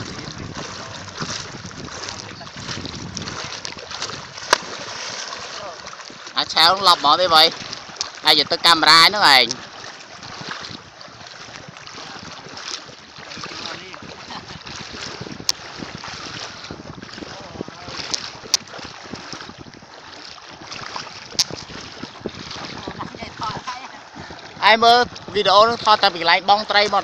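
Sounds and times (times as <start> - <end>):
people wading through water: 0.0 - 27.0
wind on microphone: 0.0 - 27.0.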